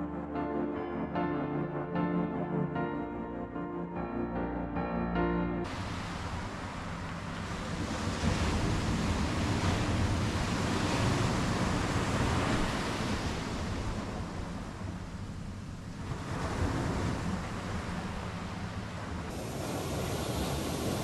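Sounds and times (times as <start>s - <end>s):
ocean surf breaking: 5.2s - 21.0s
wind rumble on microphone: 5.7s - 21.0s.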